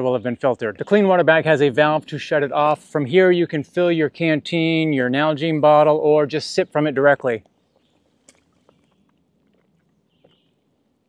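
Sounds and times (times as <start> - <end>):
faint slurp of water: 7.4 - 10.7.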